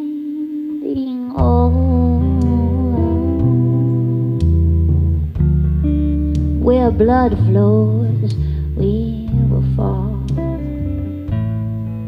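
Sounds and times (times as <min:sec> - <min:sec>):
woman humming a long note: 0:00.0 - 0:05.1
low bass notes: 0:01.3 - 0:12.0.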